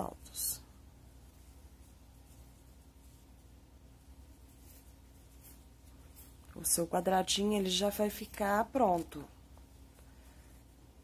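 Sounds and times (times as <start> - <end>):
crochet hook rustling thread: 0.0 - 11.0
faint room hum: 0.0 - 11.0.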